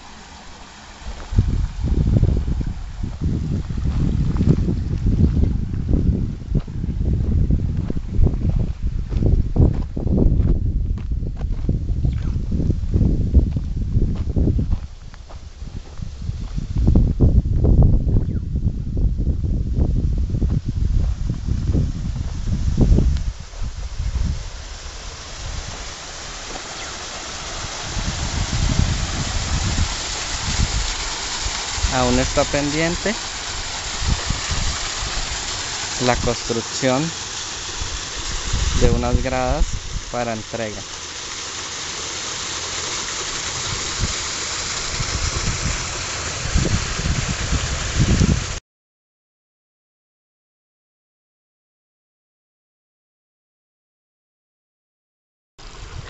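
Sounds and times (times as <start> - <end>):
water pouring over rocks: 0.0 - 6.4, 24.2 - 48.6, 55.6 - 56.0
wind thumping on microphone: 1.0 - 40.2, 43.1 - 48.6, 55.6 - 56.0.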